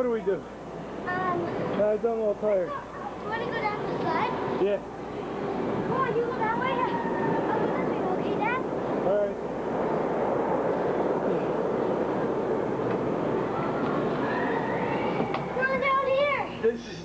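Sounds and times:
children's voices and shouts: 2.6s - 4.5s, 5.8s - 8.8s, 13.4s - 16.6s.

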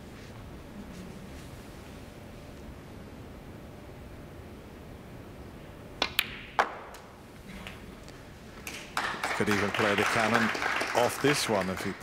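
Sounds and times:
snooker balls clicking: 6.0s - 7.1s.

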